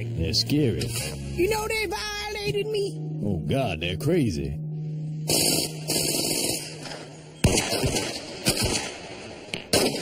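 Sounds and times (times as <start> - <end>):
gunshots: 5.3 - 10.0.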